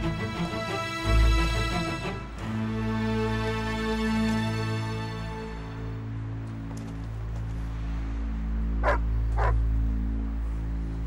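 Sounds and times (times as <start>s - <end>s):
soft background music: 0.0s - 11.0s
dog barking: 8.8s - 9.6s.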